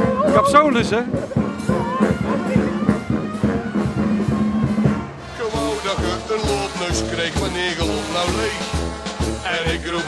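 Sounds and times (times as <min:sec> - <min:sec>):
crowd voices: 0:00.0 - 0:08.4
carnival band music: 0:00.0 - 0:10.0.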